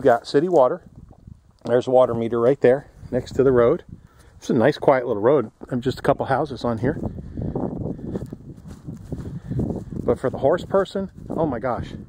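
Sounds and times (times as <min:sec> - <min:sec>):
footsteps on grass: 0:06.6 - 0:11.8.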